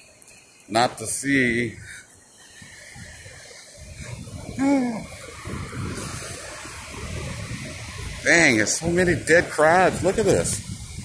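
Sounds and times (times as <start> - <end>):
distant surf: 0.0 - 11.0
wind rumble: 1.6 - 11.0.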